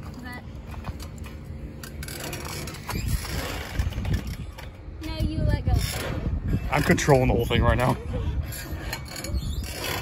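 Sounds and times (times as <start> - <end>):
metal seesaw rumbling and knocking: 1.8 - 10.0.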